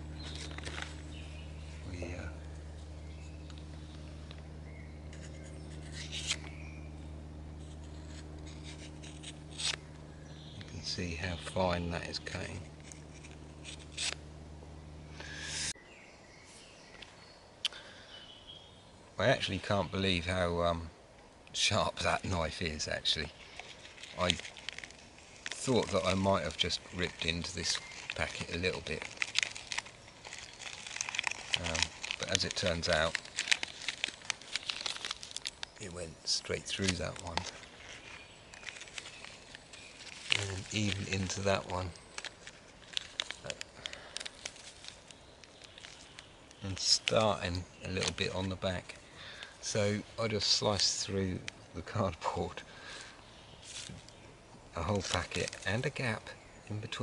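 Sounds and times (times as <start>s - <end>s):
coffee sachet crinkling: 0.0s - 14.2s, 22.2s - 51.0s, 52.8s - 54.2s, 54.8s - 56.2s
knife slicing card: 5.1s - 6.7s, 7.6s - 9.9s.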